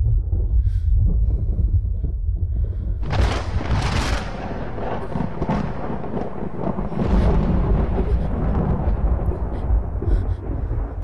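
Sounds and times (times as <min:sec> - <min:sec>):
deep rumble: 0:00.0 - 0:11.0.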